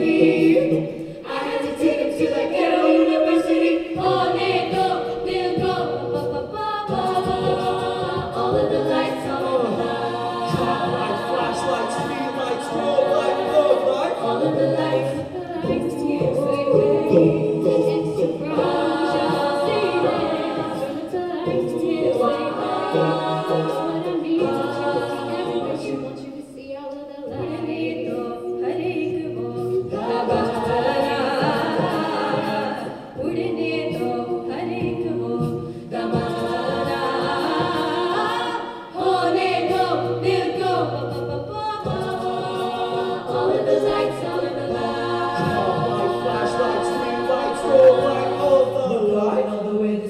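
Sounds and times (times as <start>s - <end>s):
a cappella group singing harmonies: 0.0s - 50.0s.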